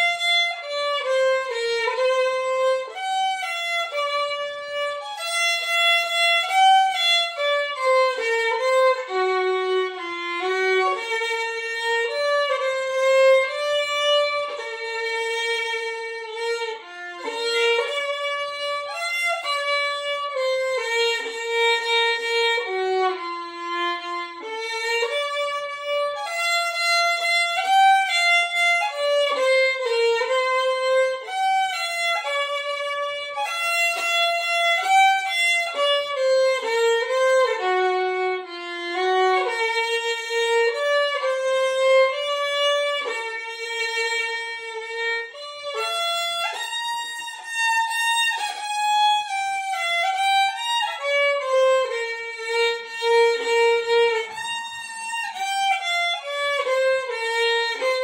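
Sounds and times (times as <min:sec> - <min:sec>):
solo violin melody: 0:00.0 - 0:58.0.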